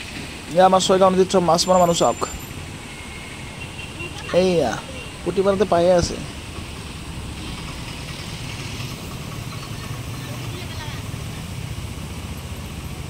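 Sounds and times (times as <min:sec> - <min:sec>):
distant voices: 0:00.0 - 0:13.0.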